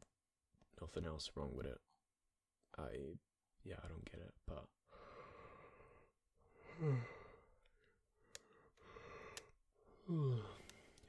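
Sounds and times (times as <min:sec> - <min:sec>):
man sighing: 0:06.6 - 0:07.5, 0:08.8 - 0:11.0.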